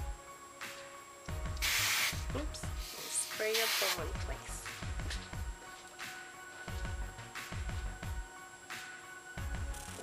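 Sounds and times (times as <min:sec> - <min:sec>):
aerosol can spraying: 0:01.5 - 0:04.2.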